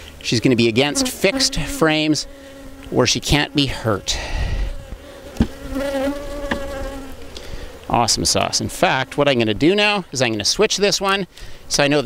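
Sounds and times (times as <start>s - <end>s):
bee buzzing: 0.6s - 10.0s.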